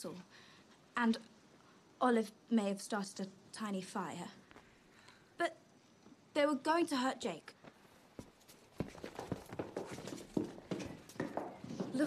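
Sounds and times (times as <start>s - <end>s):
footsteps of people walking: 7.6s - 12.0s.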